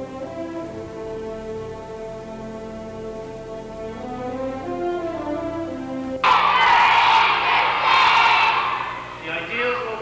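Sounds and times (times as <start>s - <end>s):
music: 0.0s - 10.0s
audience clapping and cheering: 6.2s - 9.2s.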